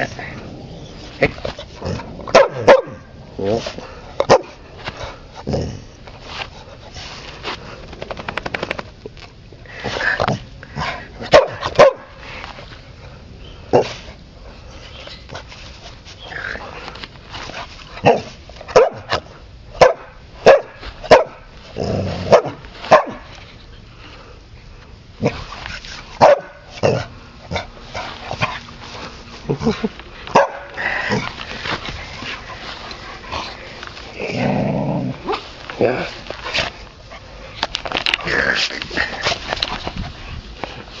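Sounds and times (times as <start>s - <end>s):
small dog barking: 2.3s - 3.0s, 11.3s - 12.1s, 18.1s - 19.1s, 19.8s - 21.4s, 26.2s - 26.6s
dogs scuffling on grass: 27.6s - 41.0s.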